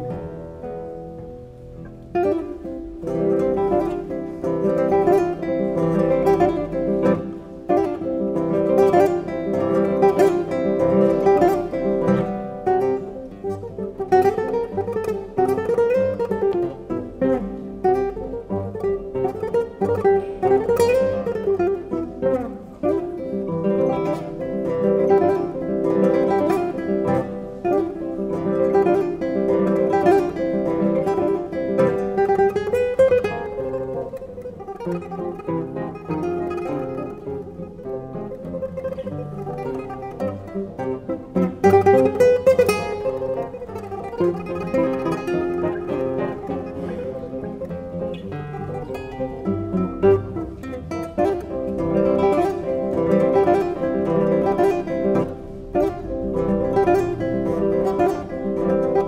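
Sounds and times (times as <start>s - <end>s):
classical guitar ensemble: 0.0s - 59.0s.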